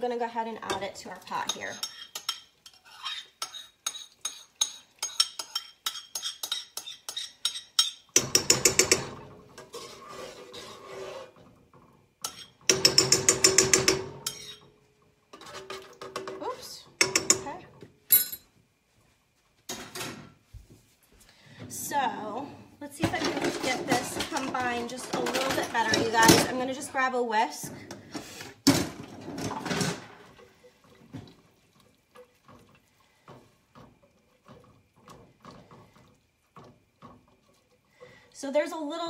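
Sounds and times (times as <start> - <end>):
fast stirring in a pot: 0.2 - 14.7, 29.4 - 39.0
utensil scraping a bowl: 1.3 - 8.0, 8.7 - 11.6.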